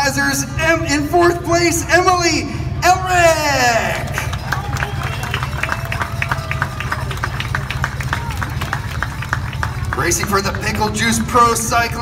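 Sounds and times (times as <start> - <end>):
faint crowd voices: 2.4 - 12.0
people clapping: 3.9 - 10.9.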